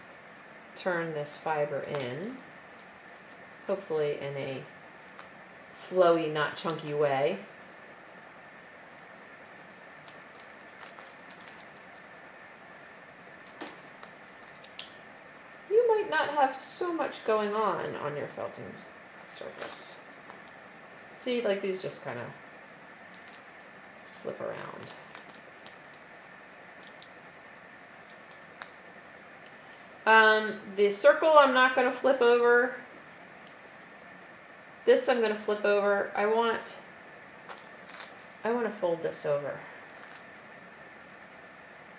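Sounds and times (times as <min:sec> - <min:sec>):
steady low hiss: 0:00.0 - 0:41.9
soft wet rustling: 0:10.0 - 0:12.3, 0:22.8 - 0:30.0, 0:37.4 - 0:38.5.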